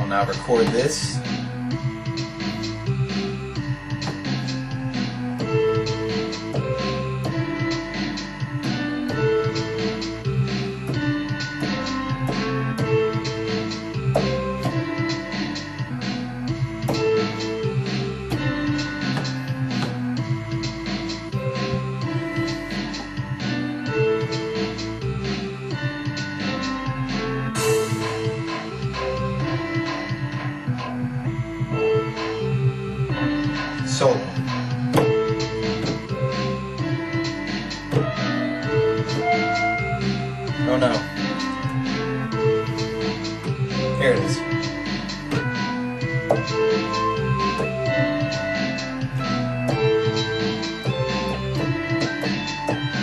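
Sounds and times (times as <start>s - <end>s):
looping drum beat: 0.0s - 15.8s, 33.4s - 53.0s
bassline: 0.0s - 53.0s
keyboard notes: 0.0s - 53.0s
drum beat: 34.9s - 36.2s, 37.7s - 40.0s.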